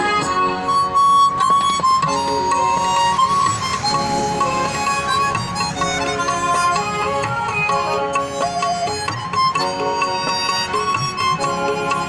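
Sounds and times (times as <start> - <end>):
harmonica playing melody: 0.0 - 12.0
instrumental accompaniment: 0.0 - 12.0.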